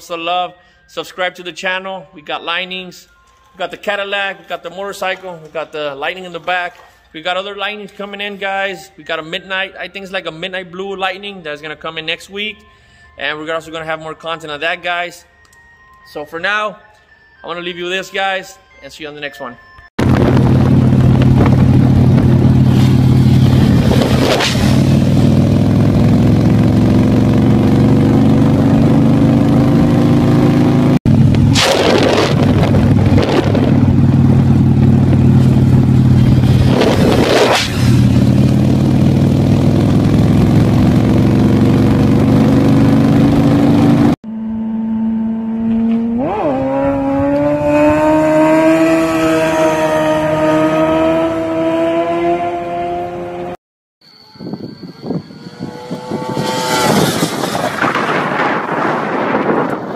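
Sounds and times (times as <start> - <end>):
wind noise rushes: 20.0 - 26.4, 31.1 - 38.8, 54.3 - 59.9
motorcycle engine at high revs: 20.0 - 53.6, 55.3 - 58.7.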